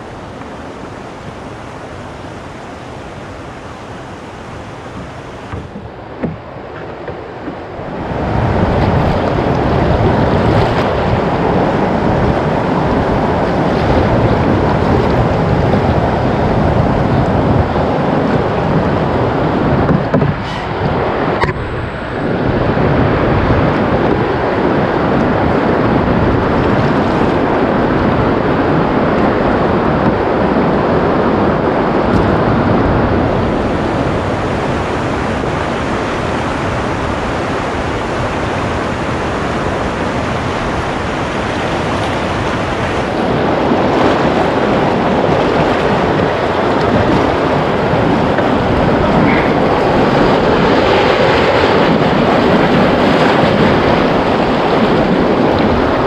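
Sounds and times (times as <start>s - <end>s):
river current rushing: 0.0s - 56.0s
wind buffeting microphone: 0.0s - 56.0s.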